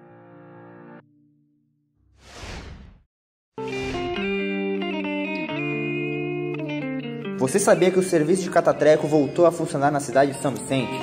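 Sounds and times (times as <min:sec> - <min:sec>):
swoosh transition effect: 0:02.1 - 0:04.5
guitar music: 0:03.6 - 0:11.0.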